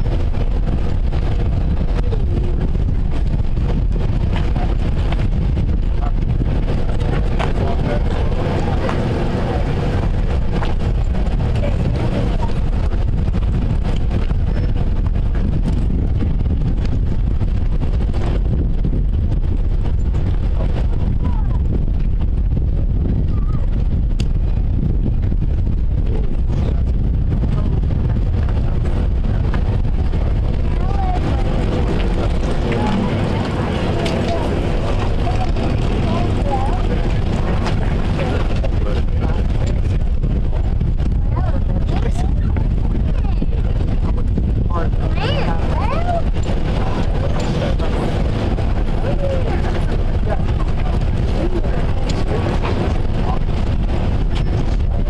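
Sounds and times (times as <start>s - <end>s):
crowd voices: 0.0s - 55.0s
wind buffeting microphone: 0.0s - 55.0s.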